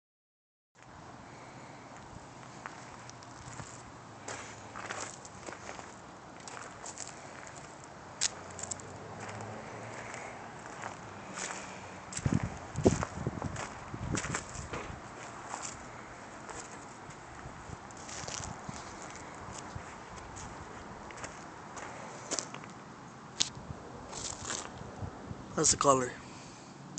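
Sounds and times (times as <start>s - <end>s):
footsteps on gravel: 2.0s - 22.8s, 23.4s - 24.8s.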